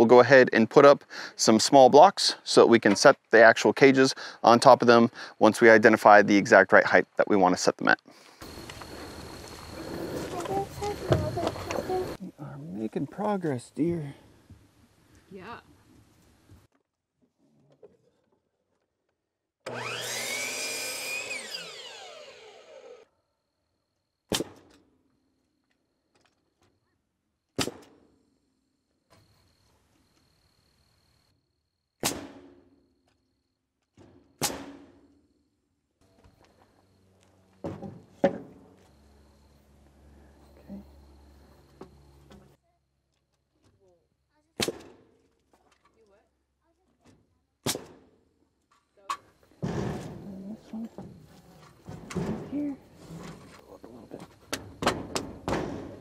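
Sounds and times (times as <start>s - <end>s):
miter saw cutting wood: 19.7s - 23.1s
pneumatic nailer shots: 24.3s - 24.8s, 27.6s - 28.0s, 32.0s - 32.7s, 34.0s - 35.0s, 44.6s - 45.1s, 47.6s - 48.1s.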